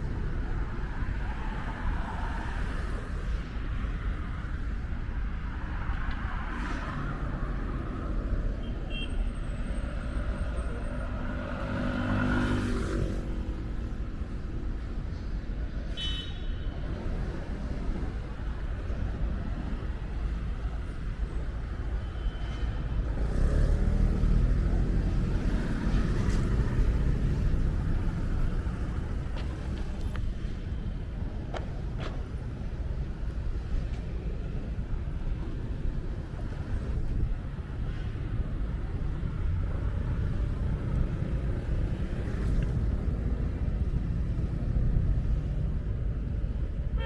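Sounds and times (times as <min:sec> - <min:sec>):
cars driving past: 0:09.3 - 0:14.6, 0:16.9 - 0:46.9.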